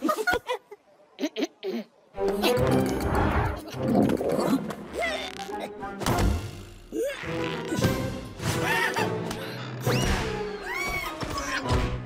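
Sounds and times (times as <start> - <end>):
background music: 1.6 - 12.0.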